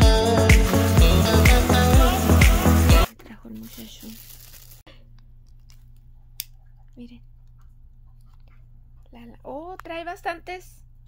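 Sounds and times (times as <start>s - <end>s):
low steady hum: 3.0s - 11.0s.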